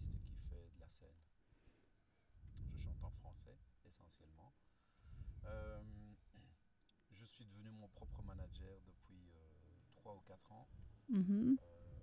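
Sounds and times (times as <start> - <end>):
man speaking quietly: 0.0 - 1.2, 7.1 - 10.7.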